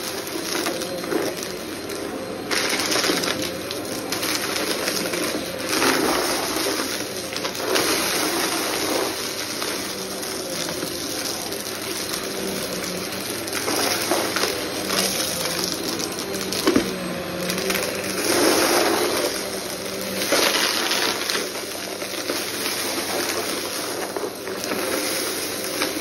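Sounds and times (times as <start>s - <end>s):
debris rattling in vacuum: 0.0s - 26.0s
vacuum cleaner running on carpet: 0.0s - 26.0s.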